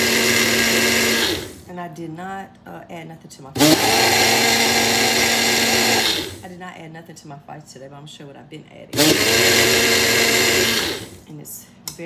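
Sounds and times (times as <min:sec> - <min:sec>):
blender motor running: 0:00.0 - 0:01.7, 0:03.6 - 0:06.4, 0:09.0 - 0:11.3.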